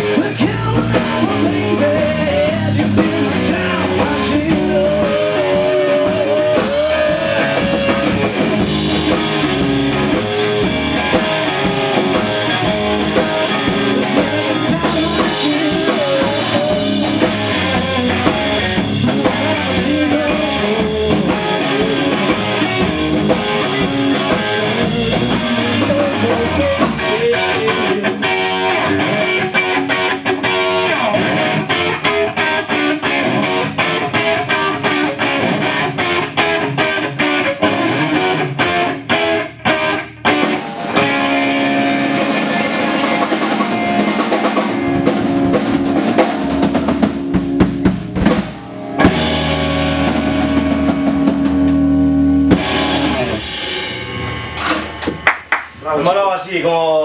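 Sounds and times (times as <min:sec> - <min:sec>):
drum kit beat: 0:00.0 - 0:31.4, 0:39.7 - 0:56.3
electric guitar: 0:00.0 - 0:55.9
bass guitar: 0:00.0 - 0:57.0.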